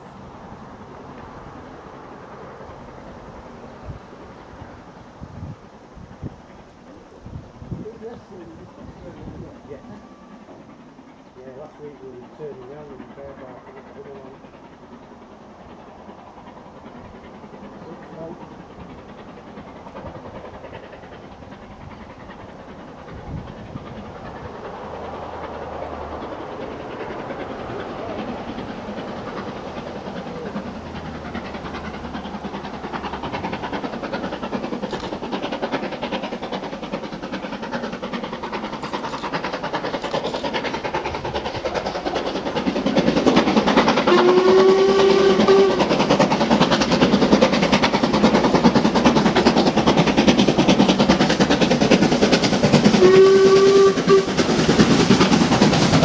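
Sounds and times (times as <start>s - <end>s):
steam locomotive approaching: 0.0s - 56.0s
steam whistle blast: 44.1s - 45.8s, 53.0s - 54.5s.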